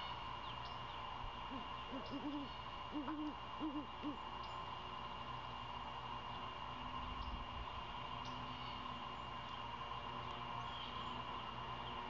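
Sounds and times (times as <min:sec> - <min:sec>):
owl hooting: 0:01.4 - 0:04.6.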